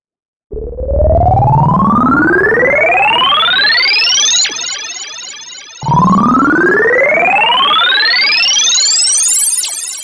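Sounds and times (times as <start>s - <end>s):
sci-fi synth tone rising in pitch: 0.5s - 10.0s.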